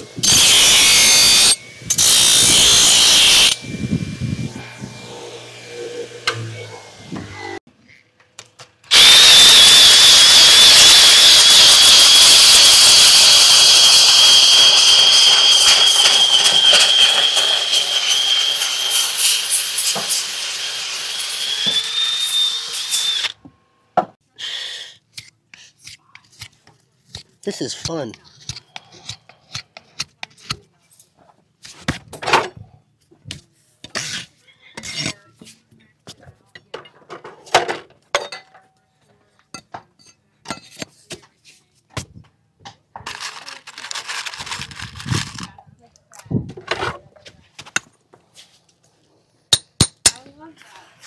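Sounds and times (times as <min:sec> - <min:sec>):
belt grinder grinding steel: 0:00.0 - 0:07.6, 0:08.9 - 0:23.4, 0:43.1 - 0:45.5
grinder whining against hoof: 0:00.0 - 0:08.0, 0:08.8 - 0:23.5.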